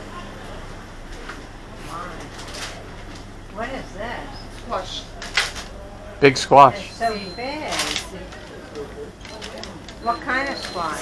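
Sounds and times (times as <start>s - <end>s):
low steady shop hum: 0.0s - 11.0s.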